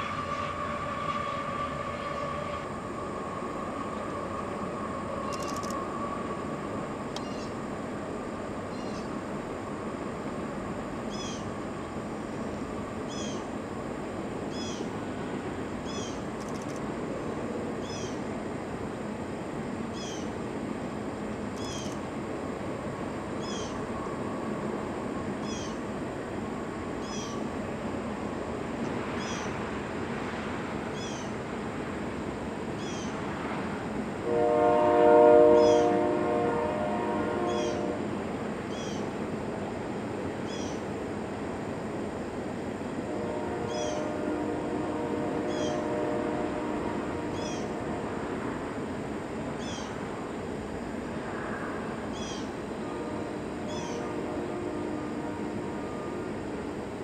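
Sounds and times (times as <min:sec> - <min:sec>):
locomotive air horn chord: 0:00.0 - 0:02.8, 0:34.2 - 0:38.1, 0:43.1 - 0:48.4, 0:52.8 - 0:56.4
freight train rolling on trestle: 0:00.0 - 0:57.0.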